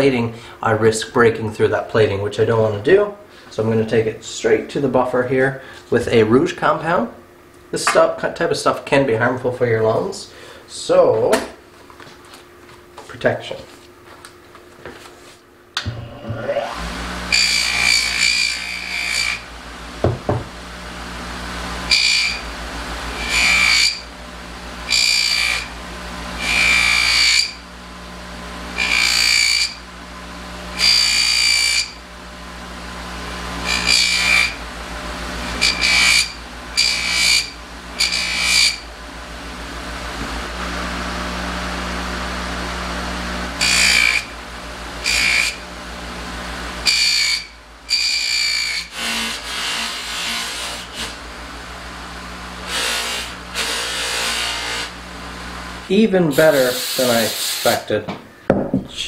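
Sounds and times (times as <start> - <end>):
buffer motor humming: 15.7 - 48.7, 50.9 - 56.7.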